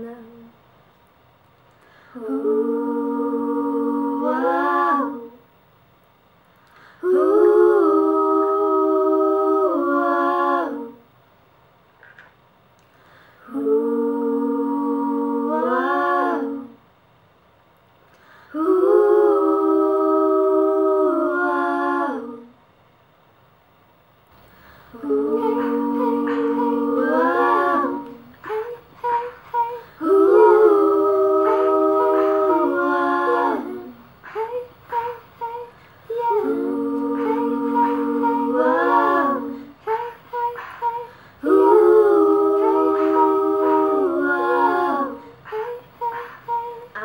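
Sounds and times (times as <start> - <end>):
women singing a cappella harmony: 0.0 - 0.6, 1.8 - 5.6, 6.8 - 11.2, 13.0 - 16.9, 18.2 - 22.6, 24.4 - 47.0
woman humming long notes: 24.9 - 47.0.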